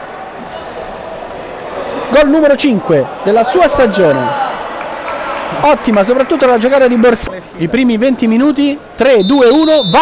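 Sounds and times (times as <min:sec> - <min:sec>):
crowd murmur in echoing hall: 0:00.0 - 0:06.4, 0:07.2 - 0:09.0.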